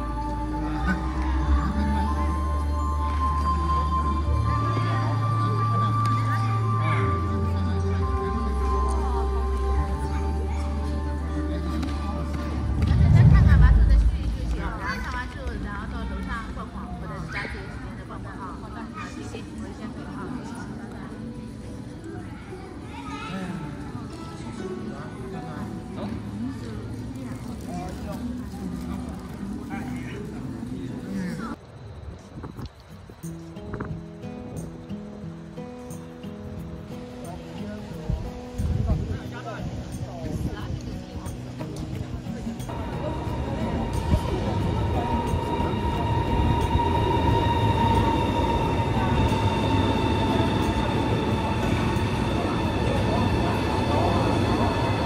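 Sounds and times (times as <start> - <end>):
high even train whine: 0.0 - 16.8, 42.4 - 55.0
chatter of voices: 0.0 - 55.0
train rumble: 7.9 - 17.1, 42.7 - 55.0
low hum: 12.2 - 15.4, 42.7 - 55.0.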